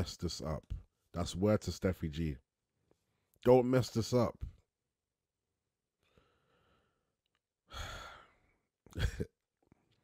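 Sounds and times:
man breathing: 0:06.0 - 0:08.7.

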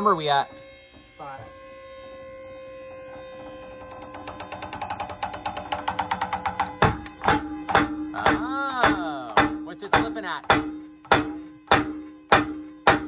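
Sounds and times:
steady hum: 0:00.0 - 0:13.0
rope hitch ticking and snapping: 0:03.8 - 0:12.6.

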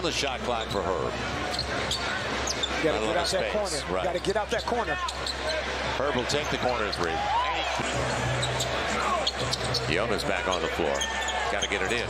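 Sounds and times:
crowd noise: 0:00.0 - 0:12.0
sneaker squeak on hardwood: 0:08.4 - 0:11.9.

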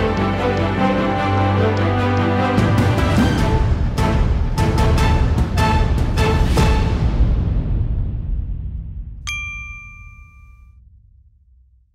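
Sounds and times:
low rumbling music: 0:00.0 - 0:09.3
bright bell-like ding: 0:09.3 - 0:10.7.

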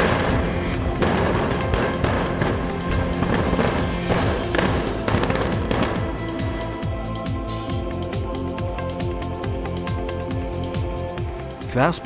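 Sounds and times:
rock blast boom: 0:00.0 - 0:06.2.

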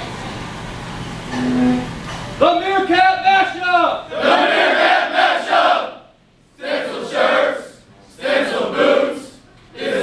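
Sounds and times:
group singing in unison: 0:06.6 - 0:10.0.

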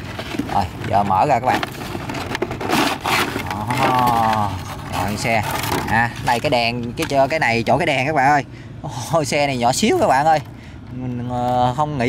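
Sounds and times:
plastic bag rustling: 0:00.0 - 0:07.4
cardboard box pulled open: 0:01.7 - 0:06.0.

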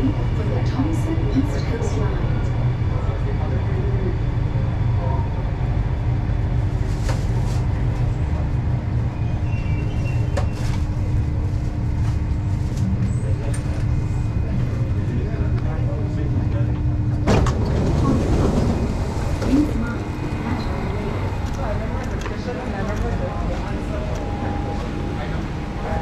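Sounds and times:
constant hum: 0:00.0 - 0:26.0
train rumbling: 0:00.0 - 0:26.0.

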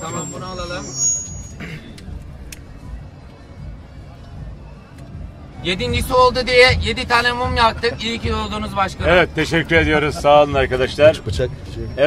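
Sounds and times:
faint music: 0:00.0 - 0:12.0
murmur of crowd: 0:00.0 - 0:12.0.

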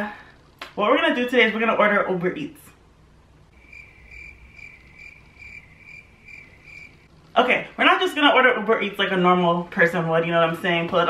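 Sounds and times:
cricket chirping: 0:03.5 - 0:07.1.

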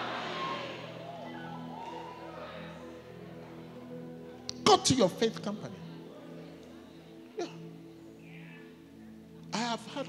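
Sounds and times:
soft sustained keyboard chords: 0:00.0 - 0:10.0
reverberating speech: 0:09.6 - 0:10.0.

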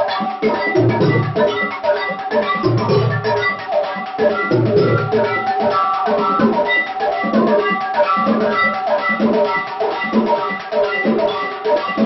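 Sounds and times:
drums and percussion beat: 0:00.0 - 0:12.0.

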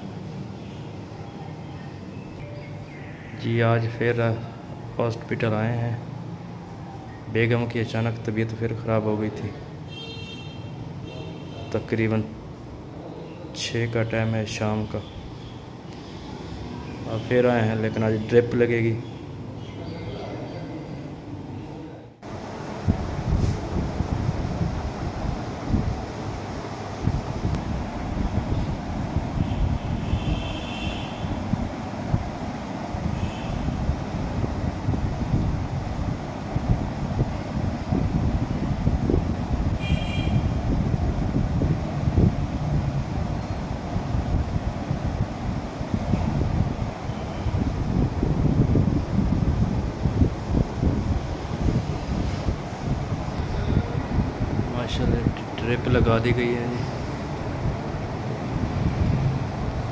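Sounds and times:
wind buffeting microphone: 0:22.8 - 0:56.3.

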